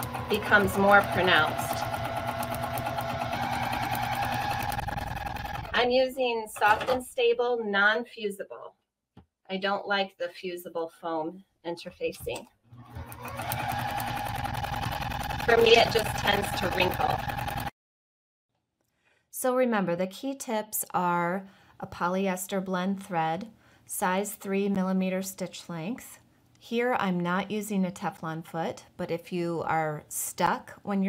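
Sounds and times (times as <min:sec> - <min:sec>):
sewing machine stitching: 0:00.0 - 0:05.8, 0:12.7 - 0:17.7.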